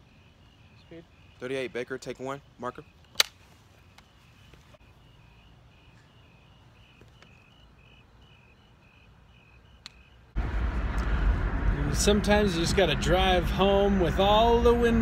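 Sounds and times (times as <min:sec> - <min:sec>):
crickets chirping: 0:04.8 - 0:11.4
car road rumble: 0:10.3 - 0:15.0
wind through open car windows: 0:10.4 - 0:15.0.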